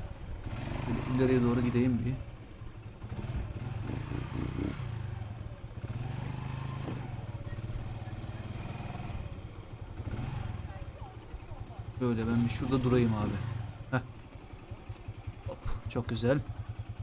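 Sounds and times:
motorcycle engine at low revs: 0:00.0 - 0:17.0.

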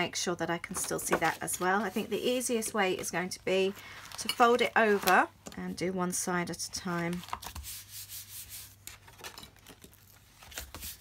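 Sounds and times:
paper rustling: 0:08.6 - 0:11.0.

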